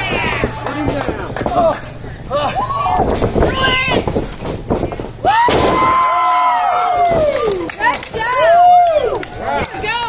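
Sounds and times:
body slamming onto ring: 4.1 - 6.0.

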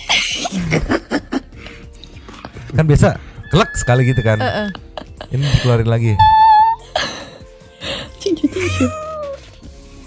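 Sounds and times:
cat meowing: 3.4 - 4.7, 6.1 - 6.8, 8.4 - 9.4.

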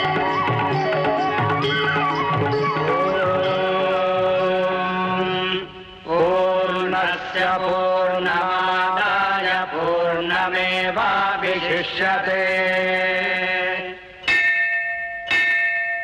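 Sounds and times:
devotional chanting: 0.0 - 14.3.

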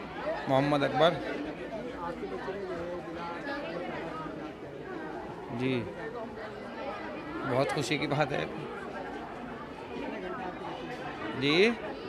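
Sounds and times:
background chatter: 0.0 - 12.0
interview speech: 0.2 - 12.0.

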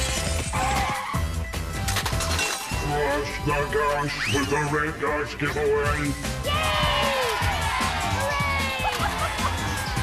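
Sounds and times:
cartoon background music with a beat: 0.0 - 10.0.

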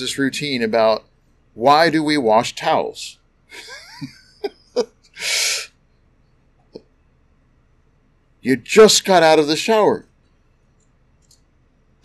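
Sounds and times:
man chuckling: 3.5 - 5.7
loud breathy exhale: 5.2 - 5.7.

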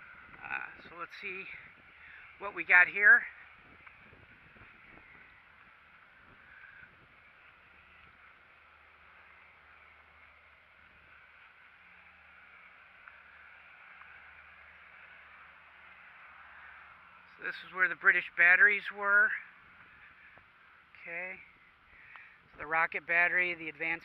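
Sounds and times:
faint steady hiss: 0.0 - 24.0
low hum: 0.0 - 24.0.

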